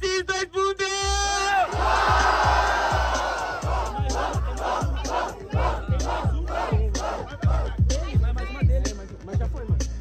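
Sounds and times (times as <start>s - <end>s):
crowd shouting and cheering: 0.9s - 8.0s
hip-hop beat with kick drum: 1.0s - 10.0s.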